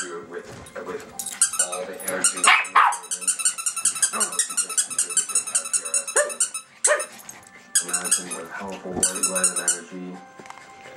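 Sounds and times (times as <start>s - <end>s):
toy squeaker squeaking: 1.2s - 10.0s
puppy whining and yelping: 2.5s - 8.4s.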